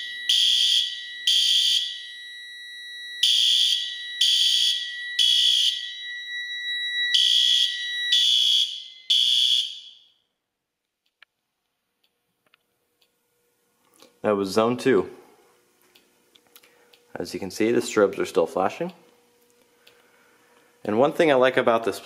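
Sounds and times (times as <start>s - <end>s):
fire alarm horn blasts: 0.0s - 10.3s.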